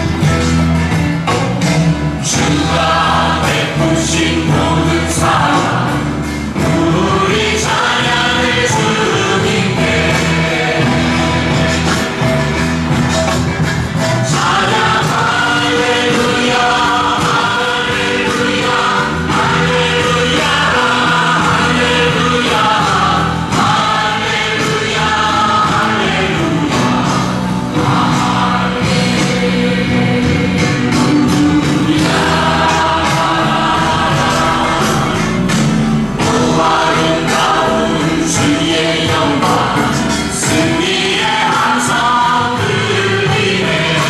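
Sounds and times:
instrumental backing music: 0:00.0 - 0:44.0
choir singing worship song: 0:02.1 - 0:44.0.

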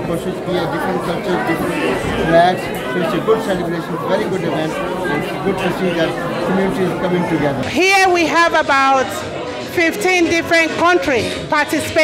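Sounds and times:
man talking: 0:00.0 - 0:07.7
crowd chatter: 0:00.0 - 0:12.0.

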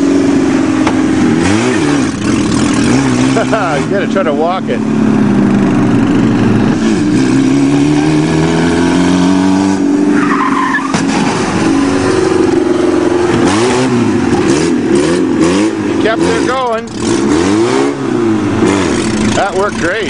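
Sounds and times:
car engine revving: 0:00.0 - 0:20.0
brief tyre squeal: 0:10.1 - 0:11.0.

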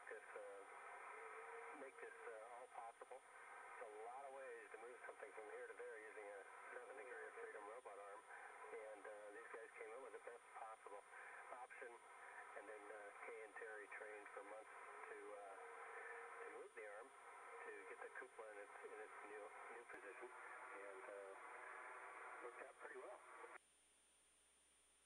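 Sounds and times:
speech over radio: 0:00.0 - 0:23.6.

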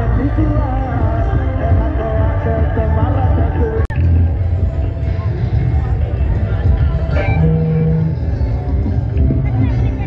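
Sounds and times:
heavy bass: 0:00.0 - 0:10.0
loud street-band music: 0:00.0 - 0:10.0.

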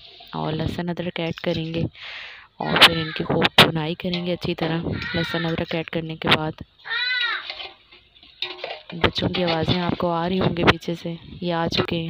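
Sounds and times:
high-pitched child call: 0:02.6 - 0:03.4, 0:04.8 - 0:05.6, 0:06.8 - 0:07.5
children's voices: 0:02.6 - 0:03.5, 0:04.7 - 0:05.7, 0:06.8 - 0:07.5.

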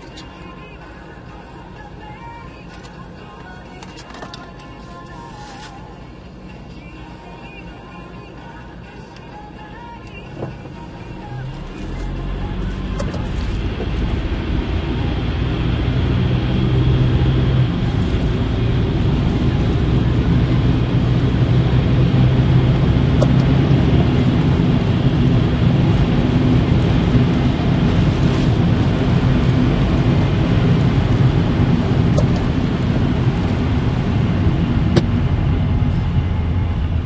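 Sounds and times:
car engine and tyres on wet road: 0:00.0 - 0:37.0.

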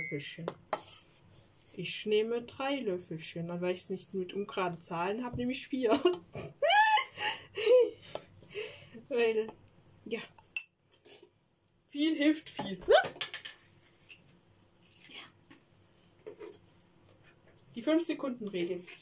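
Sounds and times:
laughter: 0:05.9 - 0:08.0.

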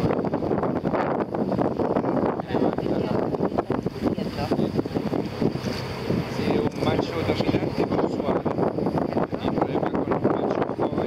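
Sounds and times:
boat engine running: 0:00.0 - 0:11.0
wind buffeting microphone: 0:00.0 - 0:11.0.

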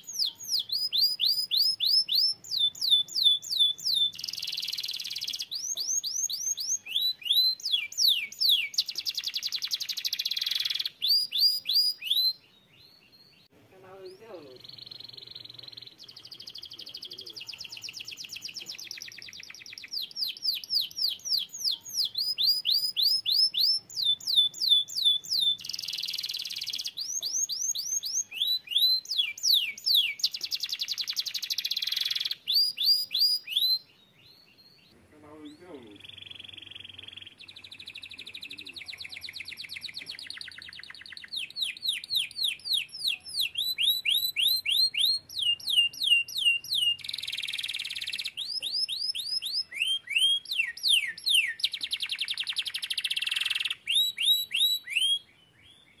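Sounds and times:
canary singing: 0:00.0 - 0:56.0.

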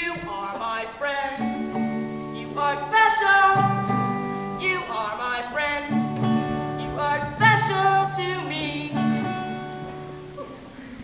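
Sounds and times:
acoustic guitar chord ringing: 0:01.4 - 0:10.5.

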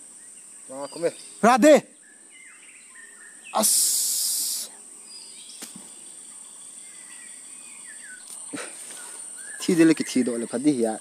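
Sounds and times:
high-pitched insect drone: 0:03.4 - 0:11.0.

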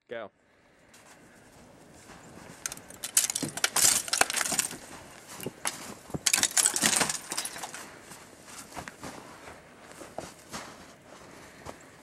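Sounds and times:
icicles snapping and breaking: 0:02.6 - 0:07.8.

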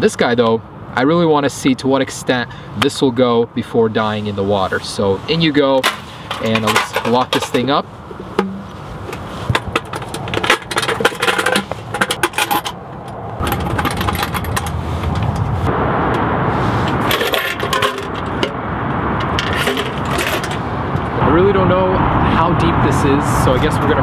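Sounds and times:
steady rushing noise: 0:03.7 - 0:24.0
metal clinking and clicking: 0:09.5 - 0:15.4.

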